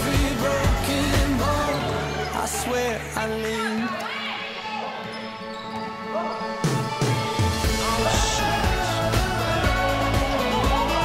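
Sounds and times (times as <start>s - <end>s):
pop music playing: 0.0s - 4.6s, 6.0s - 11.0s.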